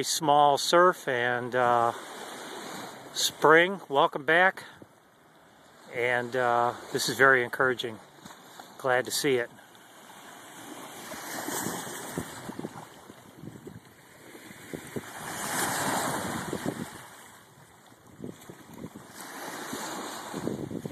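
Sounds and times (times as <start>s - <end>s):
small waves washing in: 0.0s - 20.9s.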